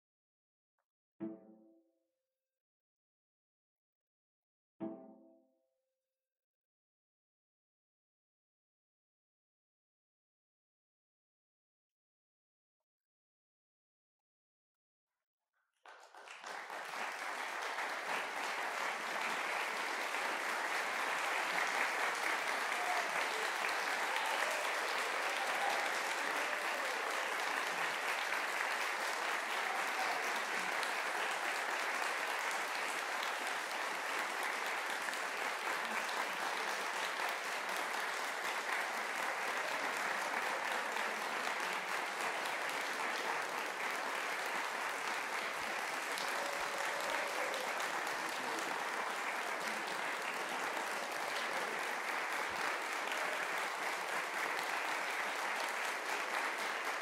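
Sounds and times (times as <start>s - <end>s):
audience applauding: 15.8s - 57.0s.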